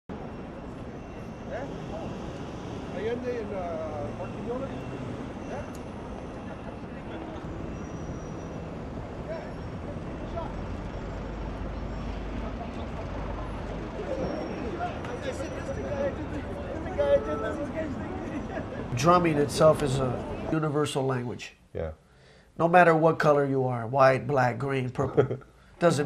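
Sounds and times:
voices of passers-by: 0.1 - 20.6
traffic rumble: 0.1 - 21.1.

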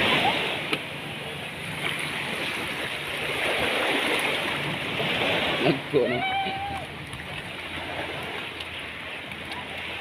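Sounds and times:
sea water lapping a boat: 0.0 - 10.0
faint light ticks: 8.5 - 8.7.

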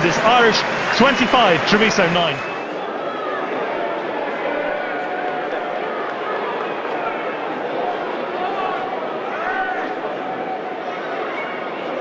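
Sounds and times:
crowd hubbub: 0.0 - 12.0.

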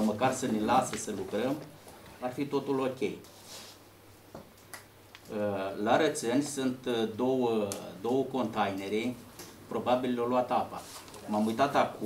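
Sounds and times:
man talking: 0.0 - 3.2, 5.3 - 12.0
soft hiss: 0.0 - 12.0.

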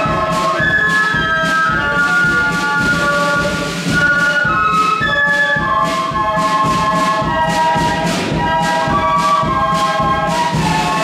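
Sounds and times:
flutes holding a chord: 0.0 - 11.0
steady drum beats: 0.0 - 11.0.

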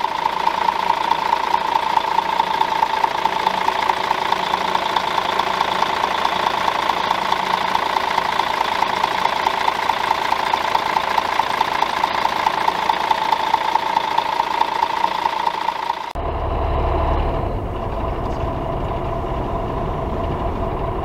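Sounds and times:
diesel engine idling: 0.0 - 21.0.

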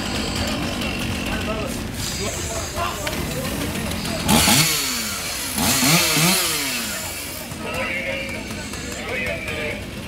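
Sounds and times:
chainsaw revving: 3.0 - 10.0.

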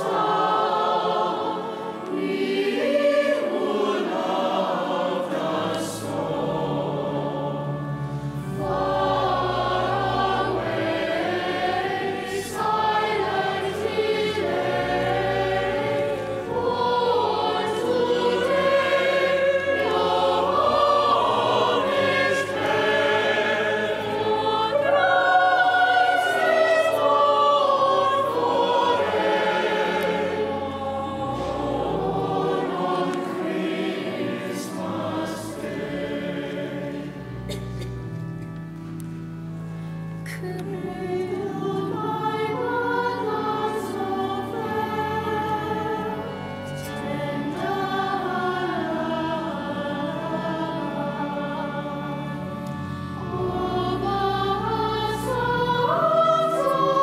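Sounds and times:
choir singing a carol: 0.0 - 57.0
low pipe organ notes: 0.0 - 57.0.

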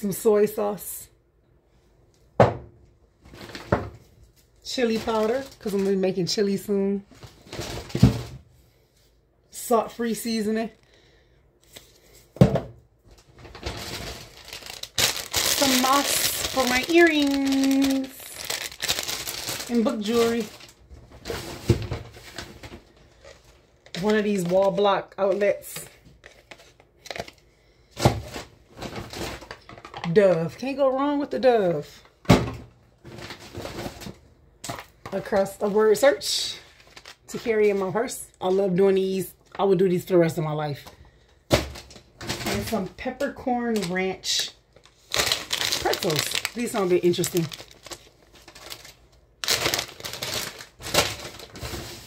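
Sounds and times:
plastic packaging rustling: 3.2 - 8.3, 13.0 - 30.3, 33.0 - 38.8, 41.6 - 52.0.

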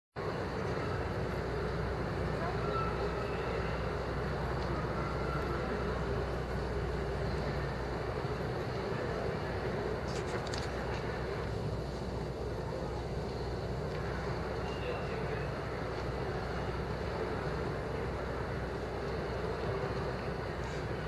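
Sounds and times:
murmur of crowd talking: 0.2 - 21.0.

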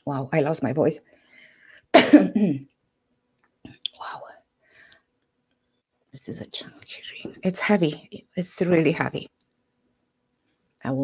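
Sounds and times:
person whispering softly: 3.7 - 4.5, 6.3 - 7.5.

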